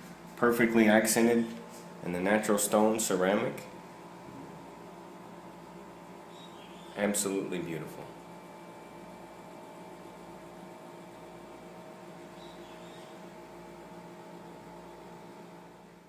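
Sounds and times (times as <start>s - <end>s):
steady tonal hum: 0.0s - 16.0s.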